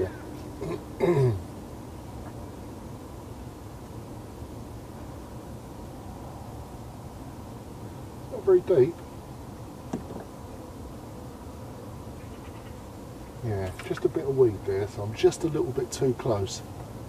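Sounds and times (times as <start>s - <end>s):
low background noise: 0.0s - 17.0s
man clearing his throat: 0.6s - 1.4s.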